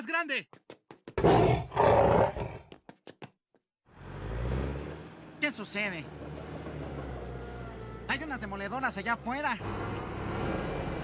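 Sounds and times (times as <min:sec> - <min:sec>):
heavy machinery engines rumbling: 0:04.0 - 0:11.0.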